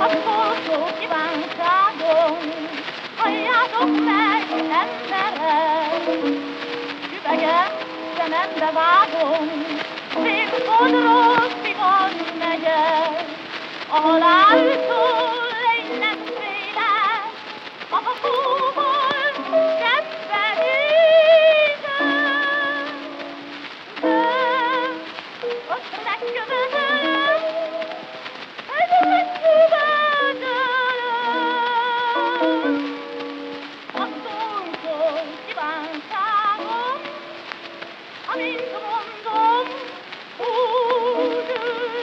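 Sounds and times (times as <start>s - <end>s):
record surface crackle and hiss: 0.0s - 42.0s.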